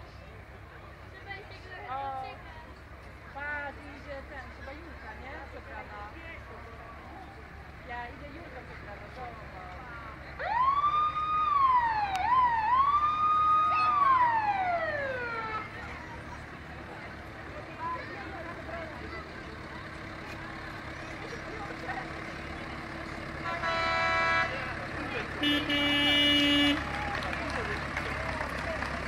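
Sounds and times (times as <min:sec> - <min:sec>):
vehicle siren wailing: 0:10.4 - 0:15.8.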